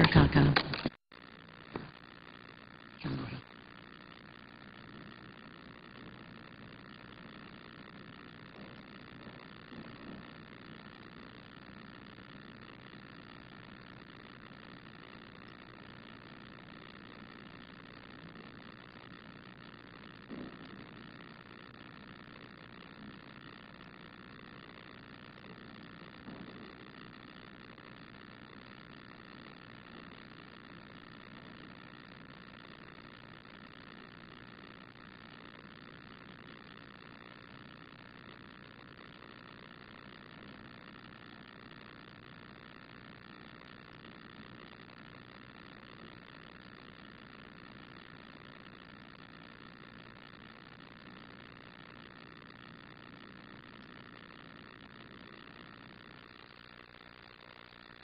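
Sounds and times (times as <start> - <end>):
low even hum: 0.0 - 46.0.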